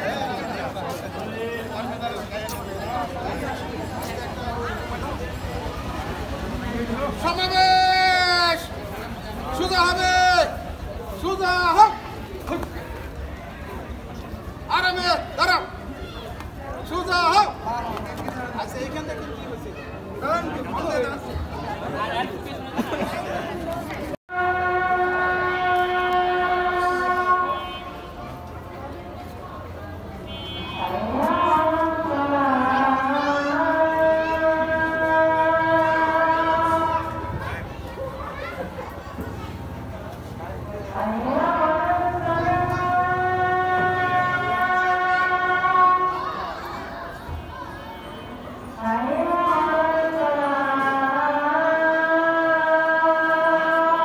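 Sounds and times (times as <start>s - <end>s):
people talking: 0.0s - 24.2s.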